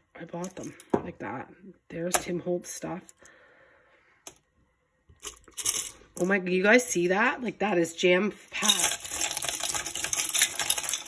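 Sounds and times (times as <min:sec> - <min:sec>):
metal charms handled in glass jar: 0:00.4 - 0:00.9, 0:05.2 - 0:06.3, 0:08.6 - 0:11.0.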